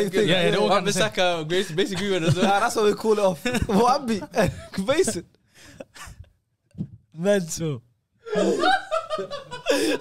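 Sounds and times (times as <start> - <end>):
men laughing: 0.2 - 6.3, 8.3 - 10.0.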